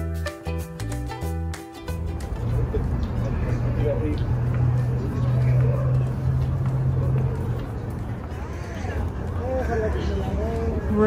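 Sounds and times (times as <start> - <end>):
music playing: 0.0 - 11.0
traffic drone: 0.9 - 11.0
voices: 2.3 - 11.0.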